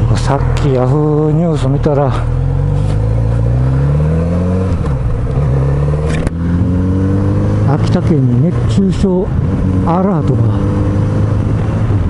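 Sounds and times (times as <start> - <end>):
motorcycle engine accelerating: 0.0 - 12.0
wind noise: 4.2 - 12.0.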